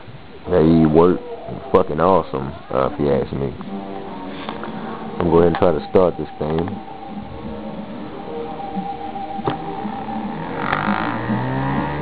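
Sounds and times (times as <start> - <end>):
pulse motor humming and buzzing: 2.4 - 5.4, 6.5 - 12.0.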